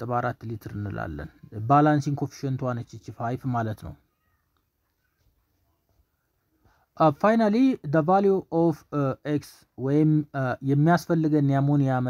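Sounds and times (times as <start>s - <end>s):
faint high-pitched tones: 0.0s - 9.8s.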